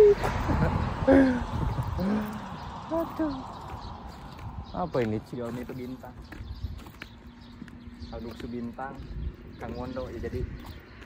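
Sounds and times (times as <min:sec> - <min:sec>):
footsteps on pavement: 0:00.0 - 0:11.0.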